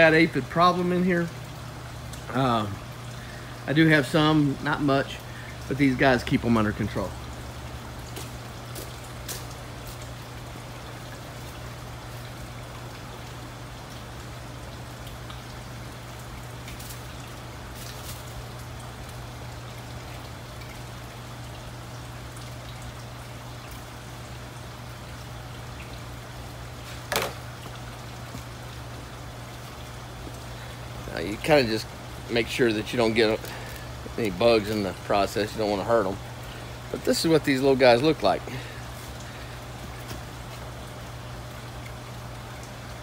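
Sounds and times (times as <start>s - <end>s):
low steady hum: 0.0s - 43.0s
trickle of running water: 0.0s - 43.0s.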